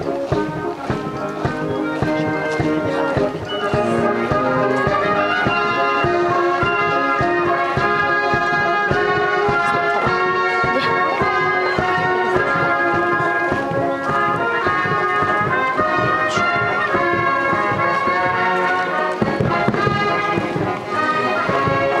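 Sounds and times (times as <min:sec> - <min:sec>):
brass band playing a march: 0:00.0 - 0:22.0.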